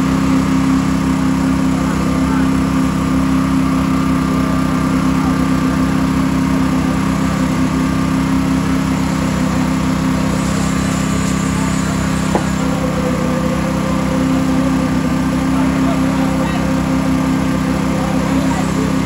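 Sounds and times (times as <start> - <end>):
engine running steadily: 0.0 - 19.0.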